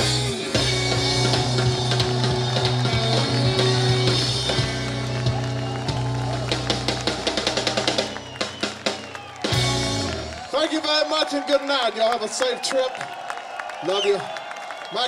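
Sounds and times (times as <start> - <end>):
live blues rock band: 0.0 - 10.5
fast drum roll: 0.6 - 10.4.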